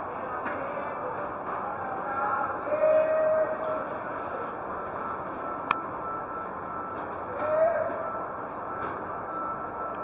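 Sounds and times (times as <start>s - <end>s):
electronic machine tones: 4.1s - 10.0s.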